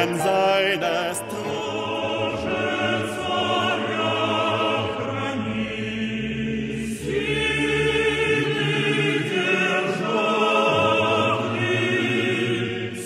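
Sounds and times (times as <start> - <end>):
choir singing held chords: 0.0 - 13.0.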